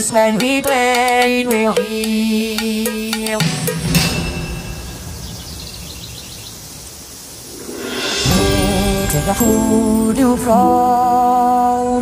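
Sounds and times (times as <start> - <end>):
bird chirping: 4.1 - 10.2.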